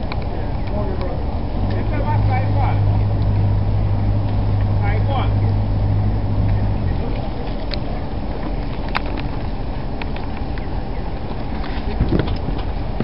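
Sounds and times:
constant rumbling noise: 0.0 - 13.0
engine humming: 0.0 - 13.0.

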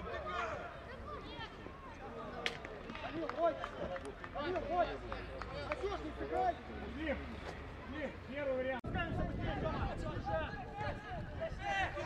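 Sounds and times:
voices shouting across a pitch: 0.0 - 2.4.

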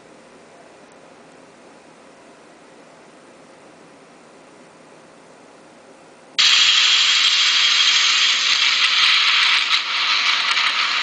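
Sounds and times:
heavy rain hiss: 6.4 - 11.0.

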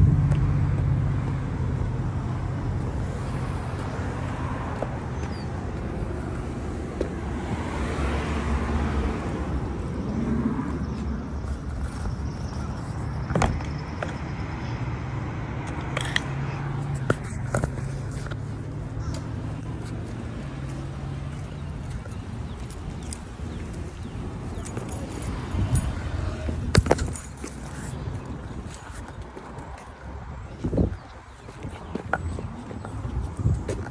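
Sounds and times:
low motor hum: 0.0 - 4.1.

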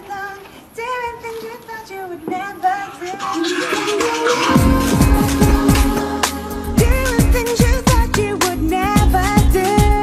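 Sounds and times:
woman singing slow melody: 0.0 - 10.0.

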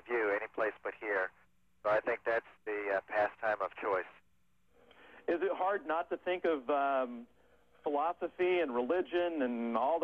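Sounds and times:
speech over radio: 0.0 - 4.2.

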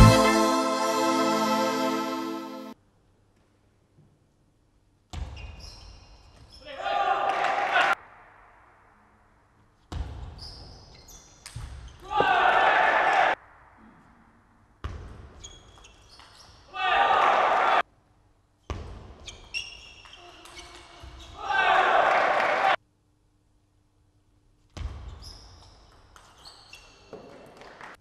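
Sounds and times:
loud shouting: 6.6 - 8.0, 12.0 - 13.4, 16.7 - 17.8, 21.4 - 22.8.

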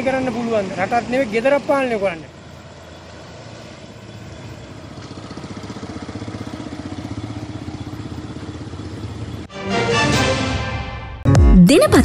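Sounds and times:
small engine running: 2.6 - 9.5.

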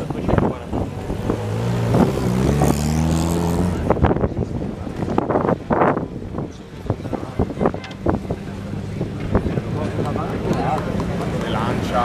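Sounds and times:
crowd voices: 0.0 - 12.0
car engine pulling away: 0.3 - 6.0.

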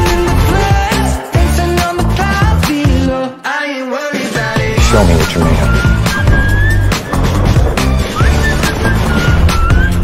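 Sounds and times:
dramatic trailer music: 4.5 - 10.0.

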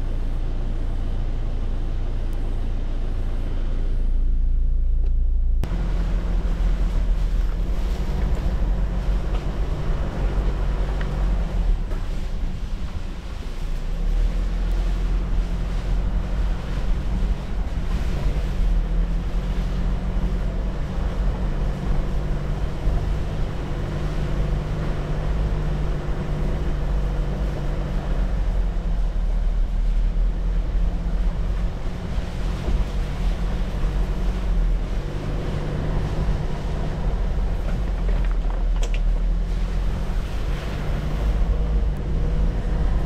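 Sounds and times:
car engine hum: 0.0 - 43.0
tyres rumbling on gravel: 5.6 - 43.0.

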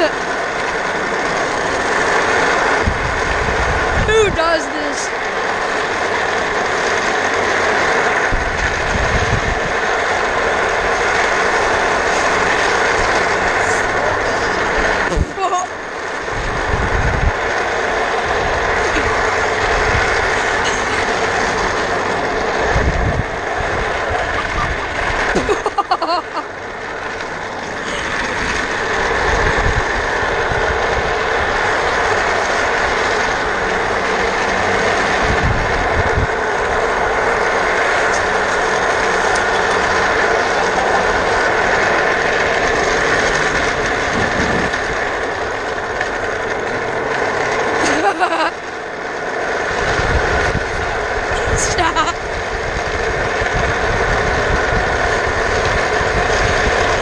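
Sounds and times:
wind buffeting microphone: 0.0 - 47.9, 48.6 - 57.0.

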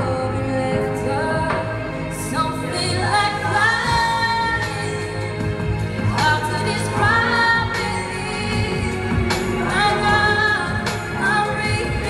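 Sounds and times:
instrumental backing music: 0.0 - 12.0
woman singing a pop ballad: 0.0 - 12.0.

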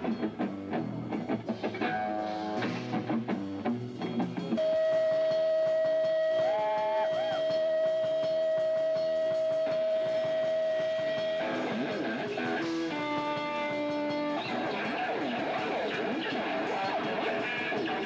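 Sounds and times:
live rock band playing: 0.0 - 18.0
lead instrument long held note: 4.6 - 11.5.

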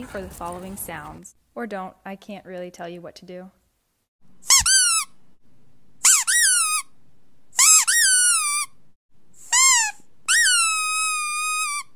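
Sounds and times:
squeaky dog toy squeaking: 4.4 - 5.2, 6.0 - 7.0, 7.6 - 8.8, 9.4 - 11.9.

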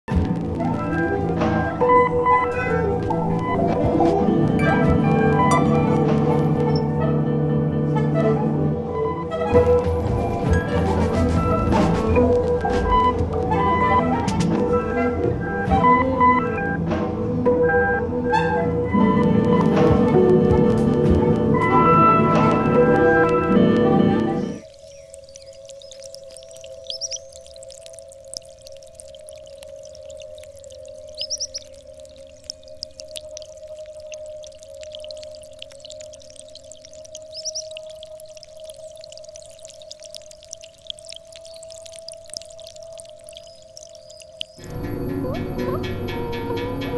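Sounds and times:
faint high crackles and clicks: 19.1 - 44.8
electronic drone: 44.1 - 46.9.

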